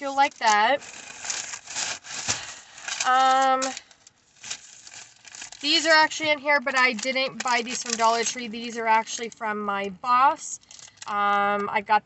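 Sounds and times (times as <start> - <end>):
shopping bags rustling: 0.0 - 9.3.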